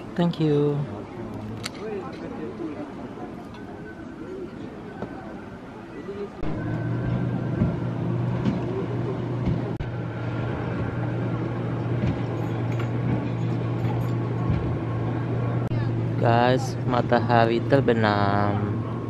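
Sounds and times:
motorboat engine droning: 3.0s - 19.0s.

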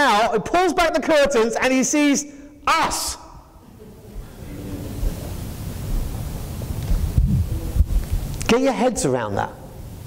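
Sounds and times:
low thumps: 5.9s - 8.3s.

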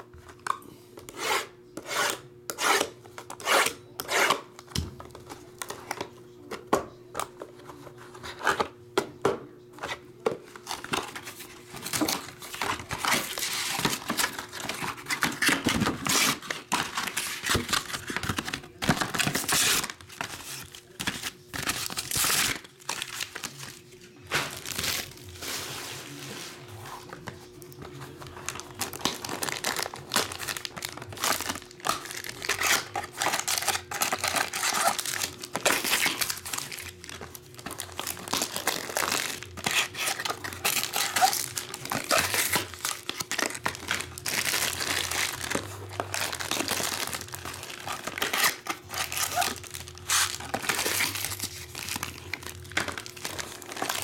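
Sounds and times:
plastic wrappers crinkling and tearing: 10.5s - 26.2s, 27.0s - 54.0s.

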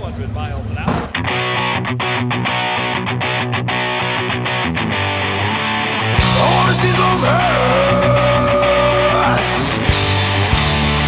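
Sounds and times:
rock and roll band music: 0.9s - 11.0s
distorted electric guitar riff: 1.1s - 11.0s.

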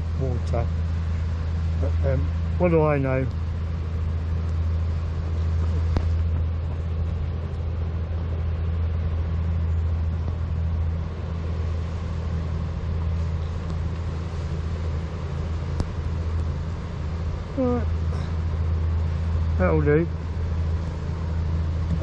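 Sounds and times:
wind rumble: 0.0s - 22.0s.

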